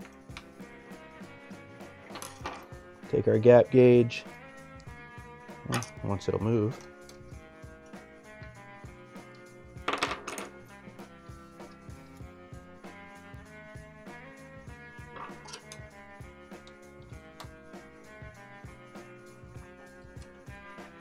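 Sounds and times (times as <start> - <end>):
background music with steady beat: 0.0 - 21.0.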